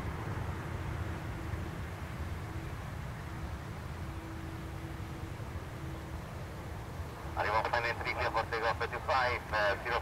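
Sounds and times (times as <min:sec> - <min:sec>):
distant jet airliner rumble: 0:00.0 - 0:10.0
man speaking: 0:07.4 - 0:10.0.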